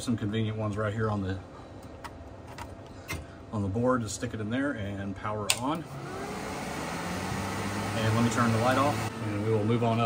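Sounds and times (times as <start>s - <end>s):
cooling fans rushing: 0.0s - 10.0s.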